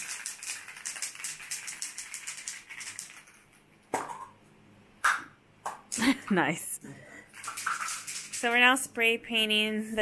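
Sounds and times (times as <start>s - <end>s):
spray can ball rattling: 0.0s - 3.5s, 7.4s - 8.7s.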